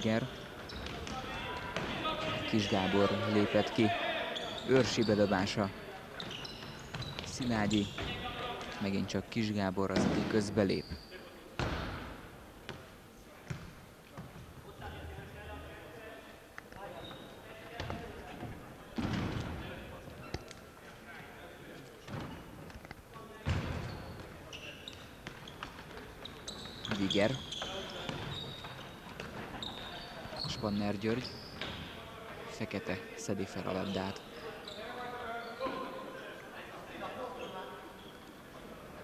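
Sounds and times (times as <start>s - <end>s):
players' voices: 0.0s - 12.0s, 12.7s - 39.0s.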